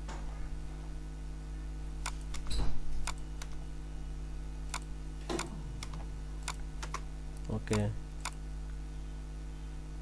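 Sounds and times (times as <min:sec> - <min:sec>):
low electrical hum: 0:00.0 - 0:10.0
computer keyboard keystrokes: 0:02.0 - 0:03.6, 0:04.7 - 0:08.4.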